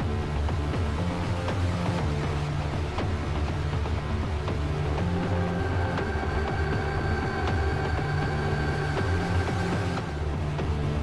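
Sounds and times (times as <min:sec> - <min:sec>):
electronic music: 0:00.8 - 0:10.6.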